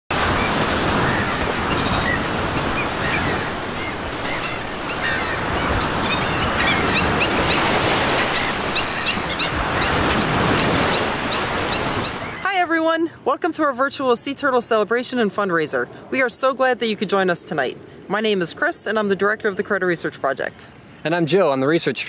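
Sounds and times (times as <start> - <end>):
ocean surf on beach: 0.1 - 12.8
birds chirping: 0.1 - 22.0.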